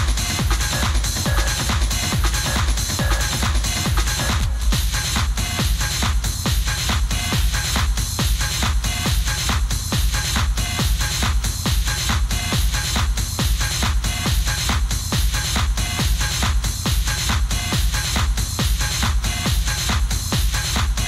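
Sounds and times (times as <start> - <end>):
hi-hats and percussion: 0.0 - 21.0
techno kick drum: 0.0 - 21.0.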